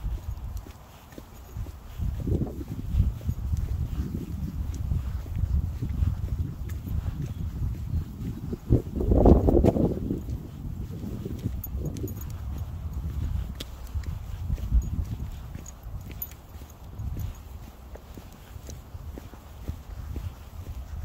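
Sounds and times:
footsteps on grass and asphalt: 0.0 - 21.0.

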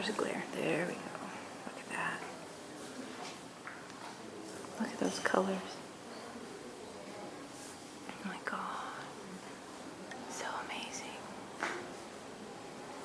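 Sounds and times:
voices whispering: 0.0 - 3.2, 4.0 - 13.0
low hiss: 0.0 - 13.0.

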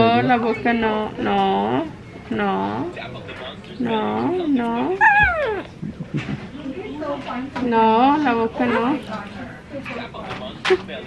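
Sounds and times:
baby squealing: 5.0 - 5.7
baby vocal sounds: 5.0 - 5.7.

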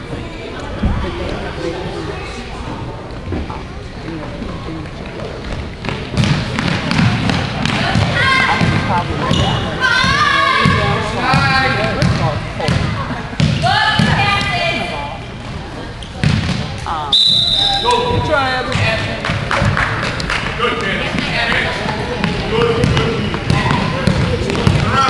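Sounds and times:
high whistle tone: 17.1 - 18.0.

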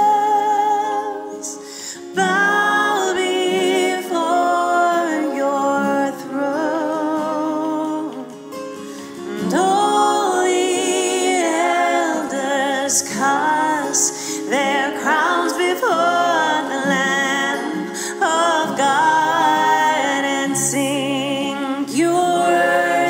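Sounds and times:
voices singing a worship song: 0.0 - 23.0.

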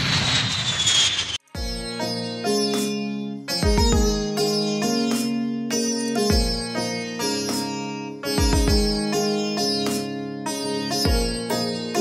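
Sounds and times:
jet airliner roar and whine: 0.0 - 1.4
music with steady pitched notes: 1.6 - 12.0.

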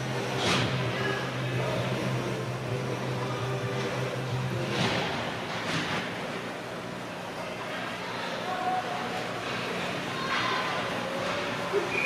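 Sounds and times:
steady low hum: 0.0 - 11.9.

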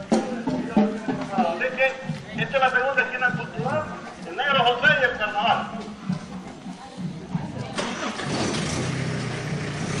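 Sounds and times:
engine humming: 7.6 - 10.0.

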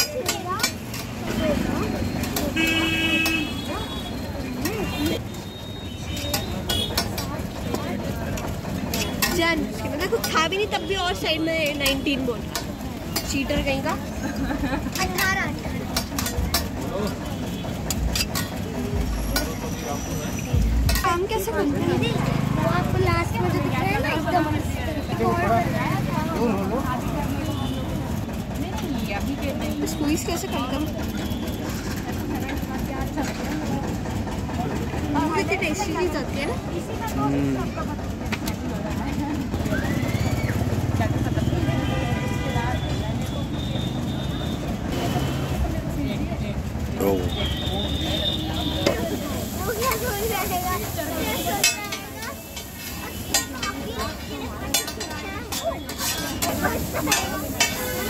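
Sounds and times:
people talking: 0.0 - 5.3, 6.0 - 58.0
street noise with low rumble: 0.0 - 58.0
metal spatula scraping griddle: 49.5 - 58.0.

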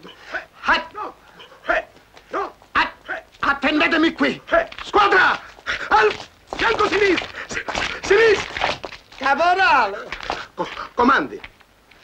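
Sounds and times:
man yelling: 0.3 - 7.3.

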